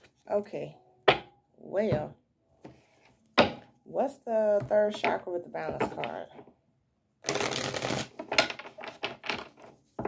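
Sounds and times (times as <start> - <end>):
cards being shuffled: 7.2 - 8.3.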